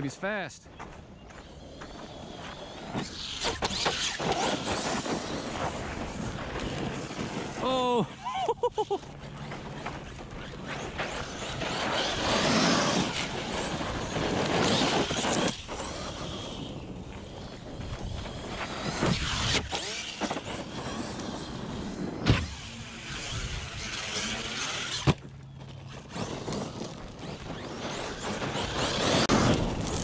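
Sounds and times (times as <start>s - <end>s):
electric motor whining: 1.4s - 8.0s, 9.0s - 30.0s
tyres crunching on gravel: 8.9s - 22.2s, 23.1s - 30.0s.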